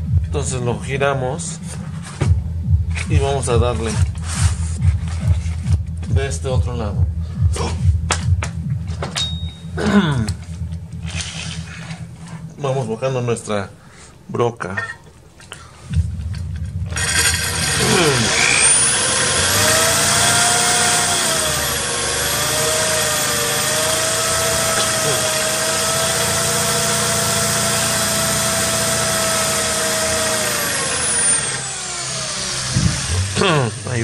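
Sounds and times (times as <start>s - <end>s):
cordless drill drilling glass: 16.9s - 34.0s.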